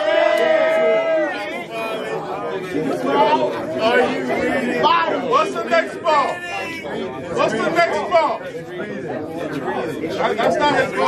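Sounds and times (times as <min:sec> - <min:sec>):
men chattering: 0:00.6 - 0:11.0.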